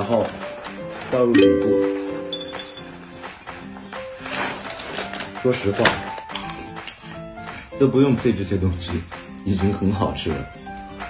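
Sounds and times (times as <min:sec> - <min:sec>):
background music: 0:01.3 - 0:03.5.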